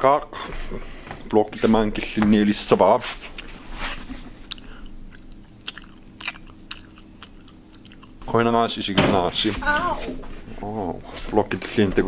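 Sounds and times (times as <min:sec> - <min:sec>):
faint steady hum: 0:00.0 - 0:12.0
person chewing: 0:03.3 - 0:03.7, 0:04.3 - 0:08.3.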